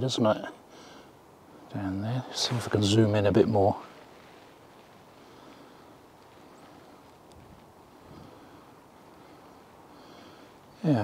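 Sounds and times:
light wind on microphone: 6.2 - 8.6.

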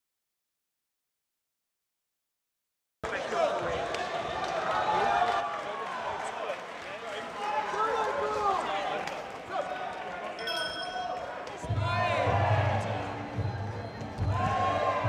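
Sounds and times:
short bell ring: 10.4 - 11.3.

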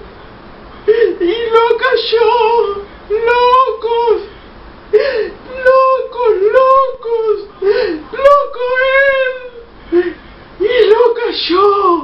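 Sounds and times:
woman singing in a wailing voice: 0.9 - 4.3, 5.0 - 12.0.

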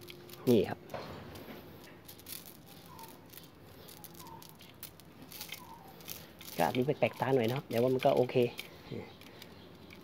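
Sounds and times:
glass marbles clicking: 0.0 - 10.0.

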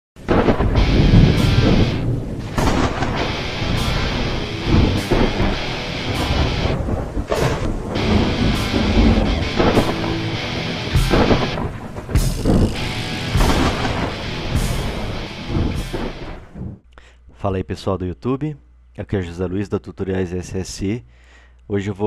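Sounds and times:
rain-like hiss: 0.2 - 16.7
deep thunder-like rumbles: 0.2 - 16.8
loud intro music: 0.3 - 16.6.

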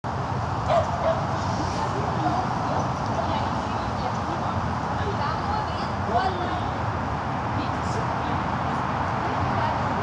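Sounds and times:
low background noise: 0.1 - 10.0
dog barking: 0.7 - 1.3.

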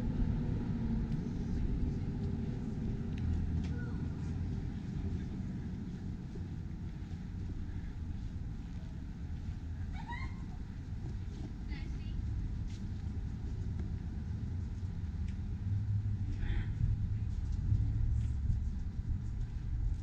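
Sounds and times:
distant city traffic rumble: 0.0 - 20.0.

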